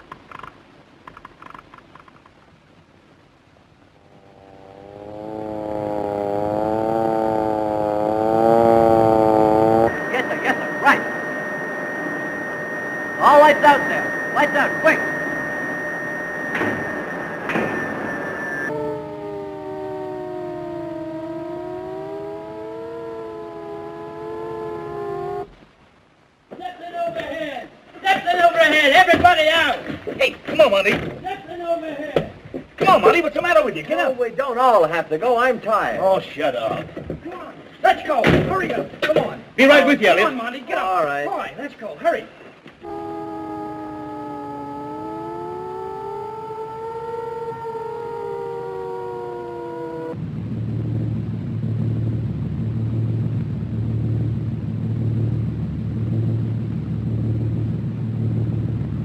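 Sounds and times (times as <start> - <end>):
wavering siren wail: 4.1 - 25.5, 42.8 - 51.0
steady high whistle: 9.8 - 25.4, 42.8 - 50.2.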